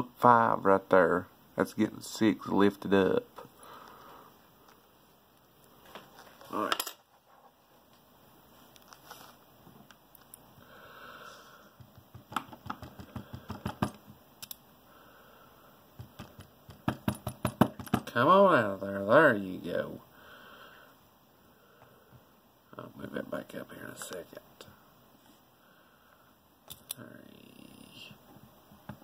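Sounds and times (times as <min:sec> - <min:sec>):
metallic clicks and taps: 0:11.8 - 0:14.6.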